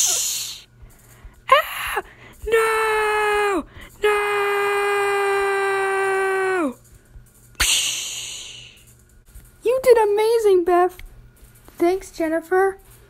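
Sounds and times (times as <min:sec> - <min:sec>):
girl screaming: 0:01.5 - 0:06.8.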